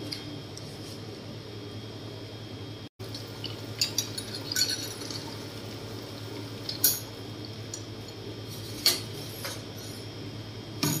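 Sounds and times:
espresso machine humming: 1.4s - 11.0s
liquid running into glass jug: 3.0s - 7.7s.

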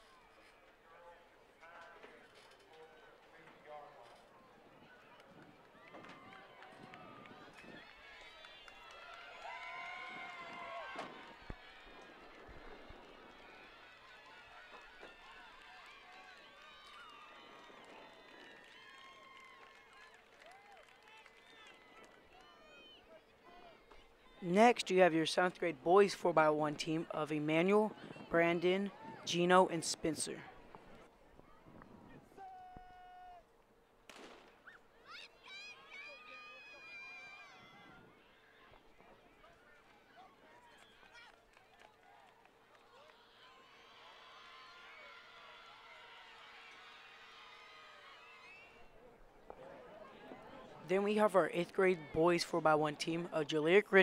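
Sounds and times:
crowd talking and shouting: 0.0s - 15.8s, 21.6s - 33.5s, 34.5s - 54.0s.

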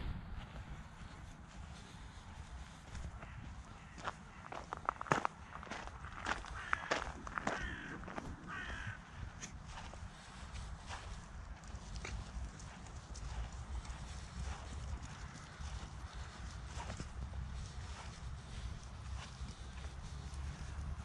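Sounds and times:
low rumble: 0.0s - 0.7s
footsteps in wet grass: 0.0s - 21.0s.

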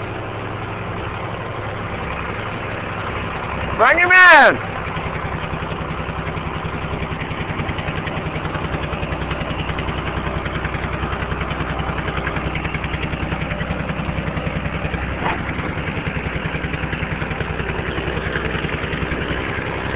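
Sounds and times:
engine idling: 0.0s - 19.9s.

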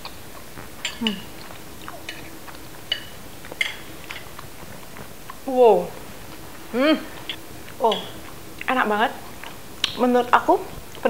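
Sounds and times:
metal spoon clinking on plate: 2.9s - 4.3s.

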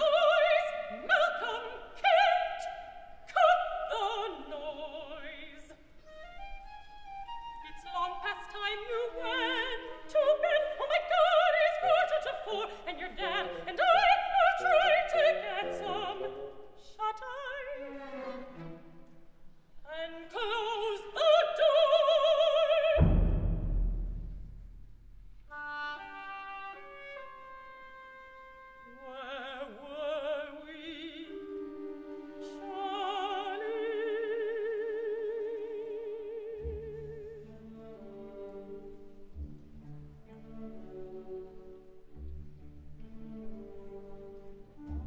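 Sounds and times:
woman singing: 0.0s - 5.8s, 7.6s - 18.0s, 19.8s - 23.2s, 25.9s - 38.0s
orchestra playing soft melody: 3.4s - 45.0s
deep orchestral stroke: 22.9s - 25.6s.

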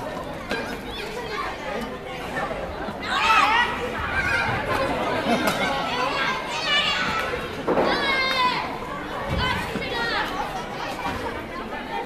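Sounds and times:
children shouting and chattering: 0.0s - 12.0s
crowd talking: 0.0s - 12.0s.

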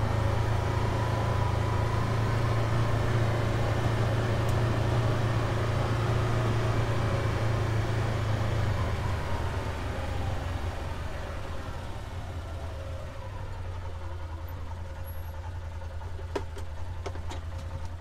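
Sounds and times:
vehicle engine running: 0.0s - 18.0s.

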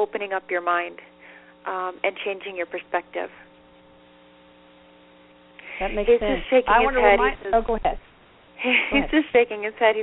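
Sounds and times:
low electrical hum: 0.0s - 10.0s
person speaking: 5.6s - 8.0s, 8.9s - 9.2s.

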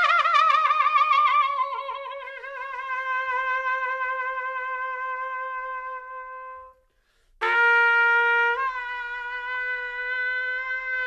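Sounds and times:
trumpet holding long note: 7.4s - 11.0s.

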